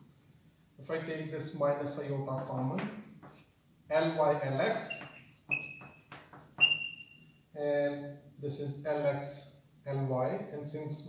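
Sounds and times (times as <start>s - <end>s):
chalk scratching on blackboard: 3.2s - 3.6s, 4.7s - 7.2s
chalk squeaks: 4.7s - 7.4s.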